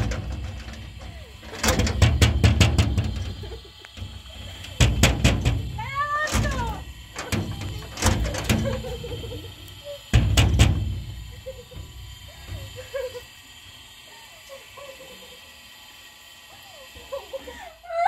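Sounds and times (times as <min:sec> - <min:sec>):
knocks on sheet-metal door: 0:01.6 - 0:03.2, 0:04.8 - 0:06.6, 0:10.1 - 0:10.9.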